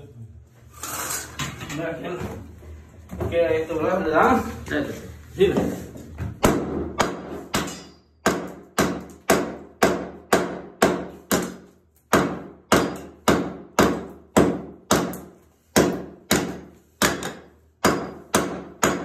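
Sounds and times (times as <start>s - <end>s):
hatchet striking floor tiles: 6.4s - 19.0s.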